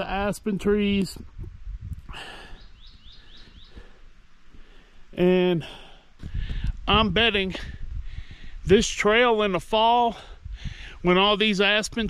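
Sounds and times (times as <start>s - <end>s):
small bird chirping: 2.2s - 4.0s.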